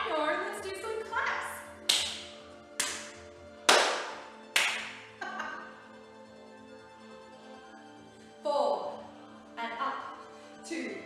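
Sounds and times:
quiet background music: 0.0 - 11.0
hand claps: 1.8 - 5.2.

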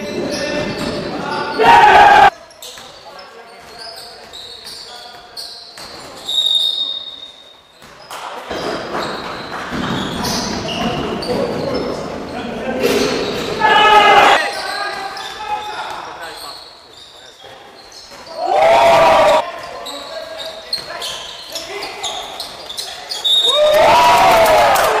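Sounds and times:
player shouting: 1.5 - 2.3
basketball bouncing on wooden court: 7.8 - 12.3.

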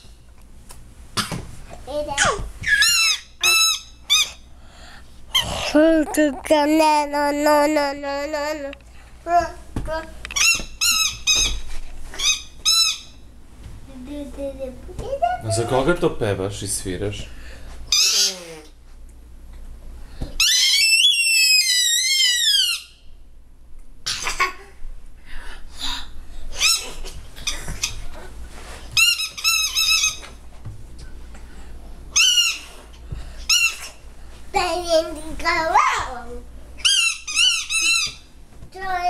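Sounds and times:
plastic toy whistle: 20.4 - 22.9.

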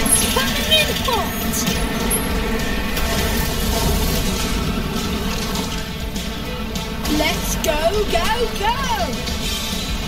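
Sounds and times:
video game background music: 0.0 - 10.0.

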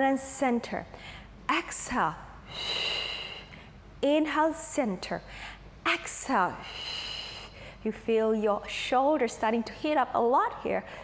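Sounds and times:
woman breathing: 0.9 - 1.4, 2.3 - 3.9, 5.2 - 5.8, 6.5 - 7.9, 10.8 - 11.0.

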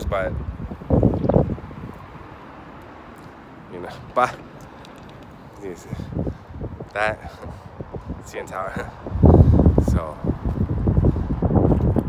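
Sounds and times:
city background hiss: 0.0 - 11.7
wind on microphone: 0.0 - 12.0.

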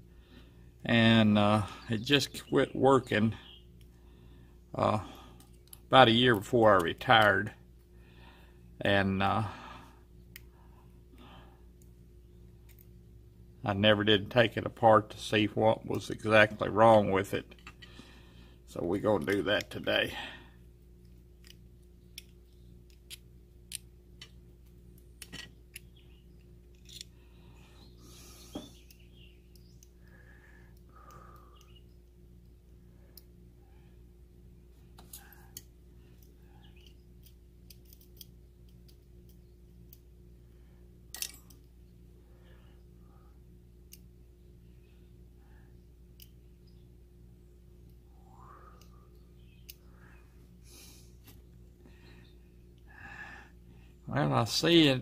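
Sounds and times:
steady low hum: 0.0 - 55.0
small metal clicks and taps: 21.4 - 27.1, 35.0 - 40.0.

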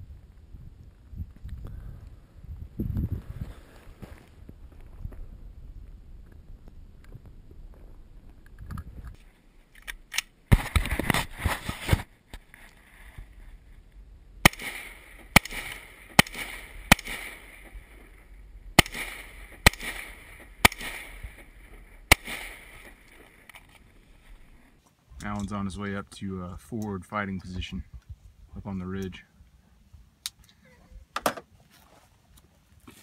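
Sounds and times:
sharp cracks with ringing tail: 14.4 - 24.7.

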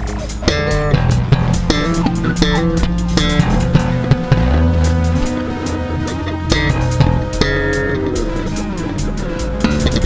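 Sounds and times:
drums: 0.0 - 10.0
electric bass low notes: 0.0 - 10.0.

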